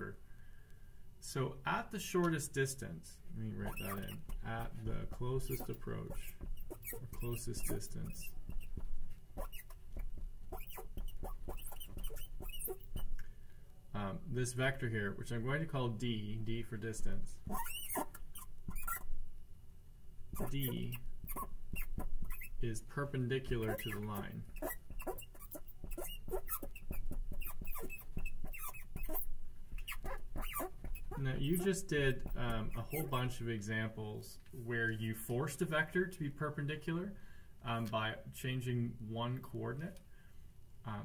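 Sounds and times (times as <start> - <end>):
marker squeaking on board: 3.5 - 13.2, 17.4 - 19.2, 20.3 - 22.7, 23.5 - 33.3.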